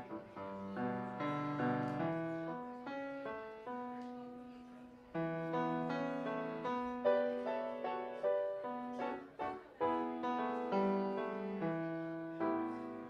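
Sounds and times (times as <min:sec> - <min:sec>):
piano playing slow chords: 0:00.0 - 0:13.0.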